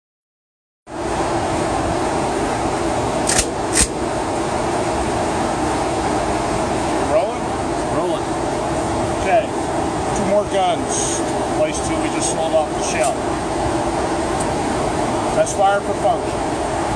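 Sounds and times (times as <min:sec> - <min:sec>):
ventilation noise: 0:00.9 - 0:16.9
sharp clicks: 0:03.3 - 0:03.9.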